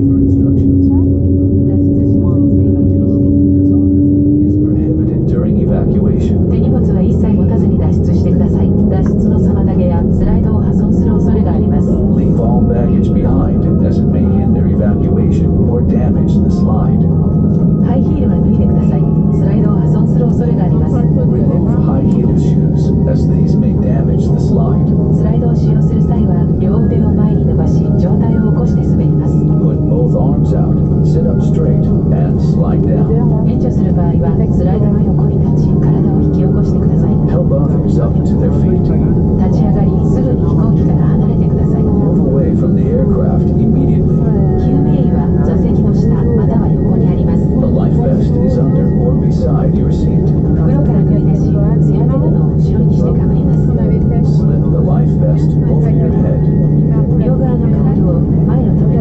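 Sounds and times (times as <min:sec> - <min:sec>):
airplane cabin low hum: 0:00.0 - 0:59.0
passenger chatter: 0:00.0 - 0:59.0.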